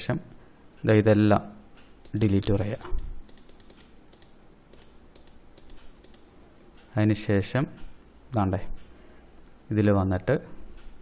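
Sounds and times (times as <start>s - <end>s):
computer mouse clicks: 1.8s - 6.9s.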